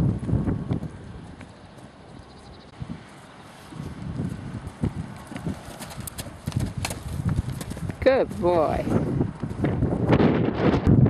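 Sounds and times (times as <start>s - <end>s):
horse hoofbeats on grass: 0.0s - 10.4s.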